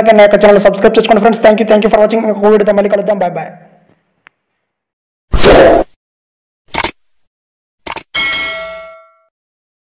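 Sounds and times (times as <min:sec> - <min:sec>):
bell ding: 0:08.2 - 0:09.3.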